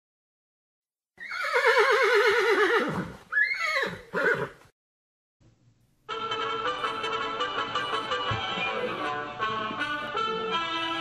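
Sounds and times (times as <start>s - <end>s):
horse whinnying: 1.2s - 4.6s.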